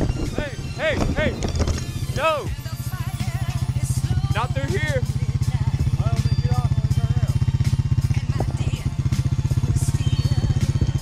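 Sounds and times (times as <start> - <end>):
four-wheeler engine running: 0.0 - 11.0.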